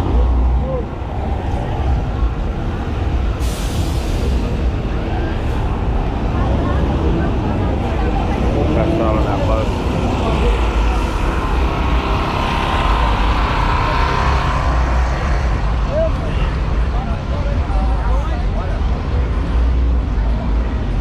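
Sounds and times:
low rumble of city traffic: 0.0 - 21.0
voices: 0.0 - 21.0.

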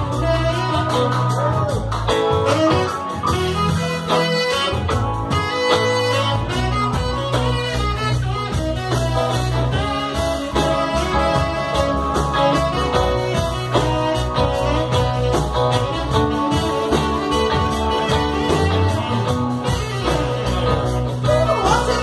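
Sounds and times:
live band playing: 0.0 - 22.0
saxophone playing: 0.0 - 22.0.

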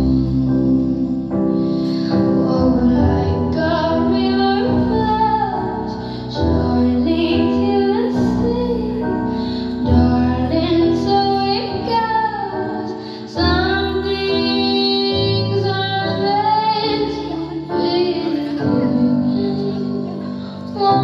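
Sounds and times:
instrumental backing music: 0.0 - 21.0
woman singing: 0.0 - 21.0.

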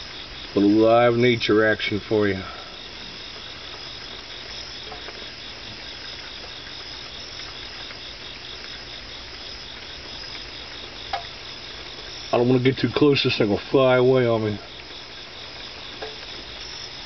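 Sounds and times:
night insects chirping: 0.0 - 17.0.

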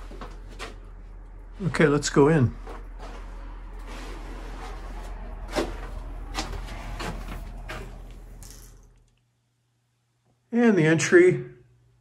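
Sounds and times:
steady low rumble: 0.0 - 9.1.

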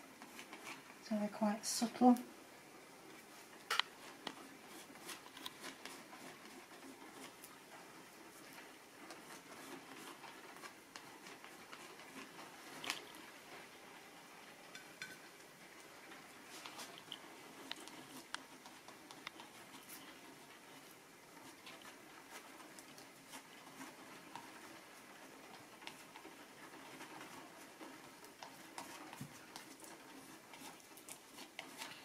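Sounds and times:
plastic card dabbing and scraping paint: 3.2 - 7.7.

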